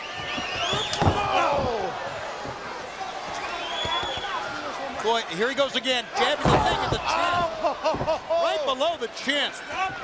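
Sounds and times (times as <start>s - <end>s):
arena crowd yelling: 0.0s - 10.0s.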